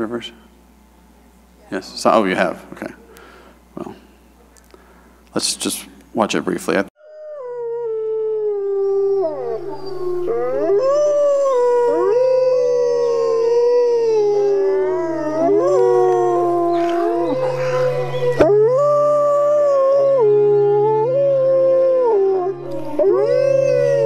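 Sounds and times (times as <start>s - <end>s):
wolves howling: 7.2s - 24.0s
steady low hum: 9.1s - 24.0s.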